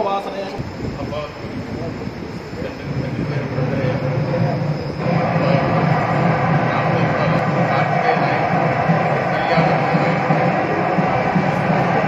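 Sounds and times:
loud rumbling background noise: 0:00.0 - 0:12.0.

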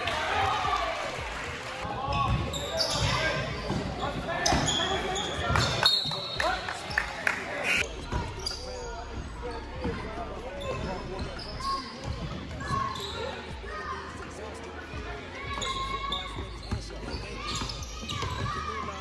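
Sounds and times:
shouts and chatter echoing: 0:00.0 - 0:19.0.

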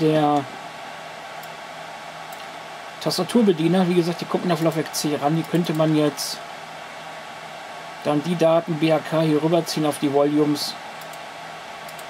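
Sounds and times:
server cooling fans whooshing: 0:00.0 - 0:12.0.

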